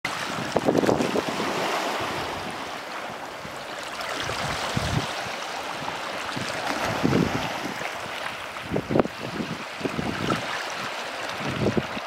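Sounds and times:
seawater gurgling and splashing: 0.1s - 12.0s
surf washing: 0.1s - 12.0s.

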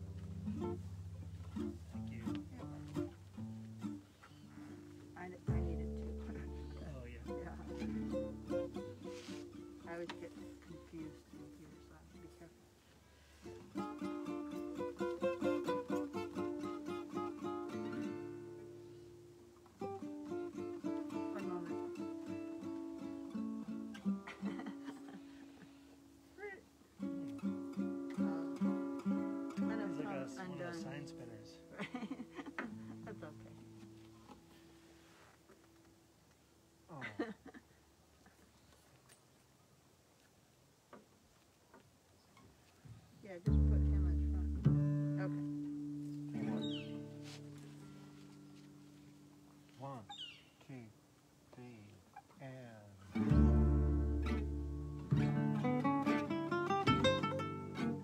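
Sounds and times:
strummed guitar chords: 0.0s - 10.0s, 13.5s - 18.9s, 19.7s - 25.2s, 27.0s - 31.8s, 43.5s - 48.8s, 53.1s - 58.0s
plucked double bass: 0.0s - 12.4s, 13.4s - 18.8s, 19.7s - 24.8s, 43.4s - 47.8s, 53.1s - 58.0s
picked guitar melody: 0.0s - 12.6s, 13.3s - 34.8s, 43.4s - 49.9s, 53.1s - 58.0s.

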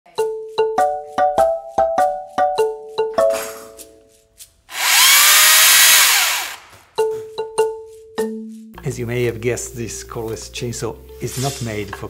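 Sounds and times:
mallet percussion music: 0.1s - 3.5s, 7.0s - 8.9s
chainsaw running: 4.7s - 6.8s.

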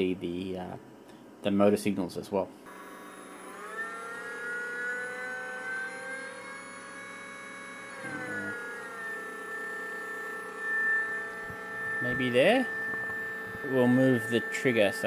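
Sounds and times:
electric motor whine: 2.7s - 15.0s.

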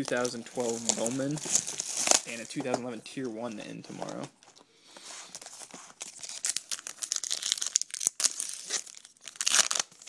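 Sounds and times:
foil packs crinkling: 0.0s - 2.8s, 5.3s - 10.0s.

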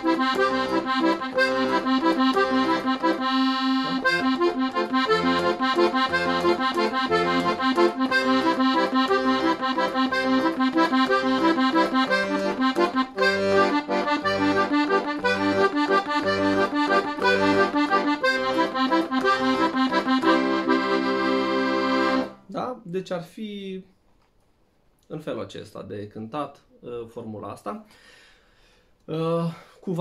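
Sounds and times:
accordion playing arpeggios: 0.0s - 22.4s.

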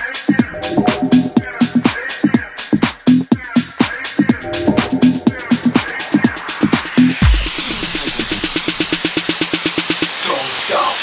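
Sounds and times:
tech house stutter roll: 3.9s - 9.5s.

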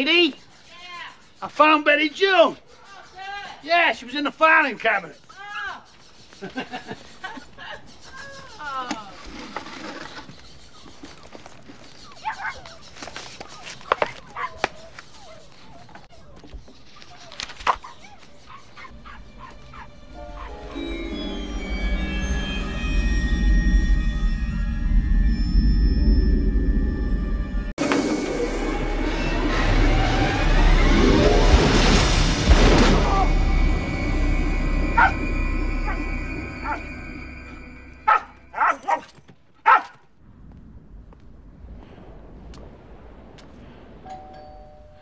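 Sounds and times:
dog barking: 12.2s - 12.8s, 13.9s - 15.9s, 17.7s - 20.6s, 35.0s - 35.2s, 38.1s - 40.0s.

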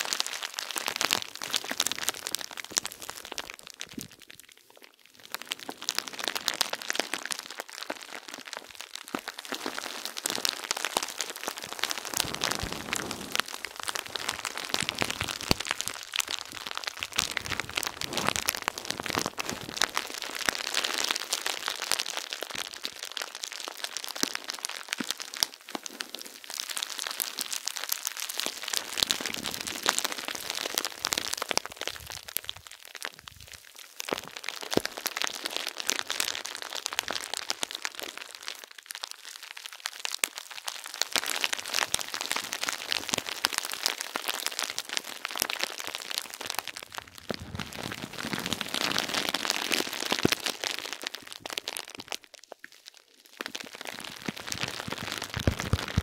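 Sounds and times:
bubble wrap crinkling: 0.0s - 56.0s.

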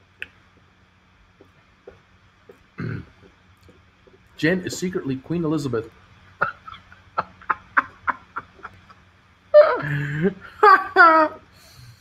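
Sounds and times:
man's stifled laughter: 6.4s - 9.0s.

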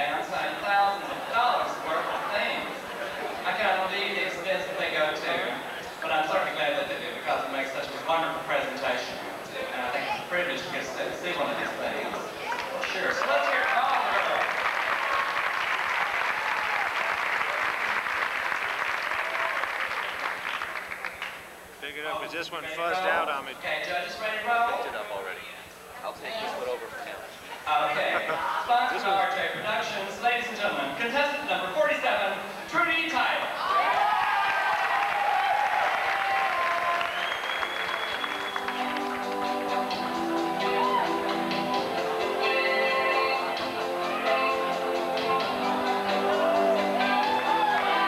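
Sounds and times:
audience applause: 12.4s - 23.4s, 33.7s - 41.2s
music: 37.4s - 48.0s.

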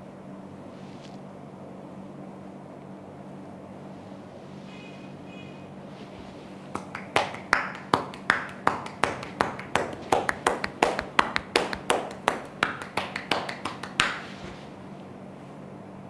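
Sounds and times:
hands slapping bare back: 6.7s - 14.4s.

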